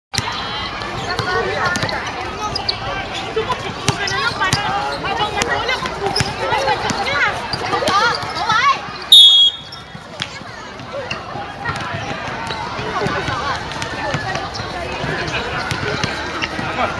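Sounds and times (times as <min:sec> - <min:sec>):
voices calling: 0:00.2 - 0:16.9
basketball bouncing on court: 0:00.9 - 0:02.1, 0:03.5 - 0:08.5, 0:09.6 - 0:16.8
referee whistle blast: 0:09.1 - 0:09.8.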